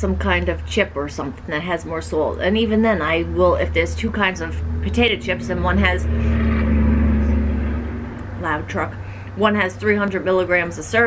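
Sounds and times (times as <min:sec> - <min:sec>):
truck passing by: 0:01.5 - 0:11.0.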